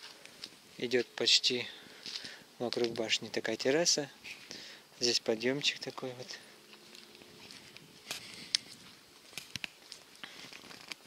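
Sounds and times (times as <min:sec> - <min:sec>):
footsteps on stone paving: 0:01.8 - 0:04.7, 0:05.6 - 0:11.0.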